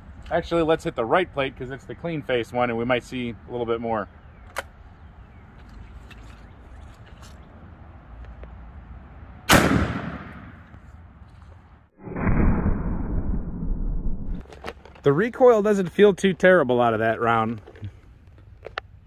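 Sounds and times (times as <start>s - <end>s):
shotgun shot with ringing echo: 9.5s - 10.6s
muffled rumbling noise: 12.0s - 14.4s.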